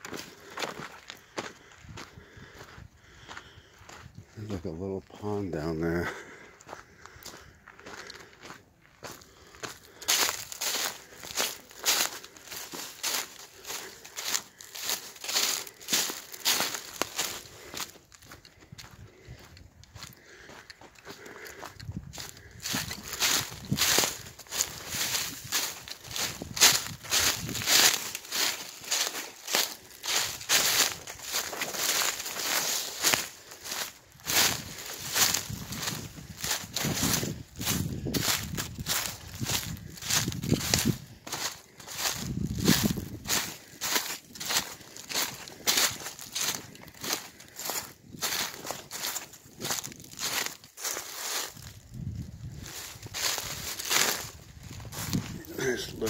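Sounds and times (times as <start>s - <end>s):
footsteps crunching dry leaves: 0.0s - 56.0s.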